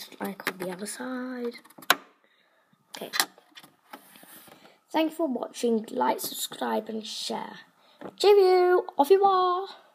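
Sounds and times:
woman speaking: 0.0 - 1.6, 3.0 - 3.3, 4.9 - 9.9.

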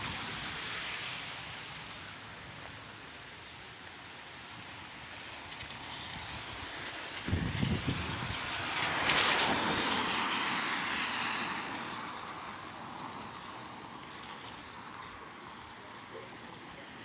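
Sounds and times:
car tyres hissing on wet road: 0.0 - 17.0.

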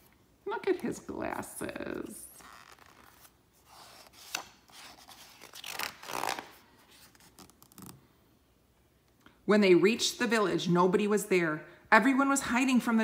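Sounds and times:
paper page rustling: 2.0 - 8.0.

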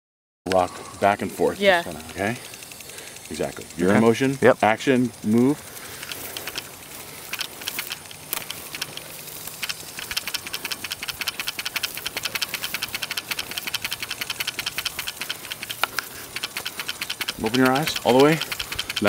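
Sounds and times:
crisp ticks: 0.5 - 1.2, 1.9 - 19.0
dry grass rustling: 5.1 - 19.0.

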